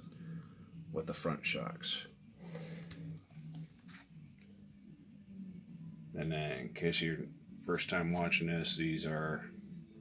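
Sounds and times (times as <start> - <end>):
soft rustling and handling: 2.4 - 4.8, 7.6 - 8.5.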